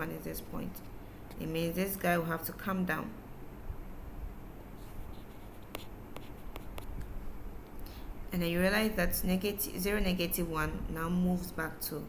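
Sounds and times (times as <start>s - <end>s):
low room hum: 0.0s - 12.0s
stylus tapping and scraping on tablet: 4.8s - 7.2s.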